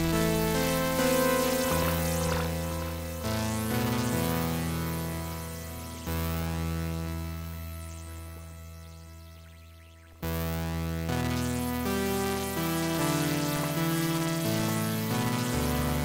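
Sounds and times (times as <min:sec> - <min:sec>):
low synth bass: 0:00.0 - 0:14.7
synth notes: 0:00.0 - 0:16.0.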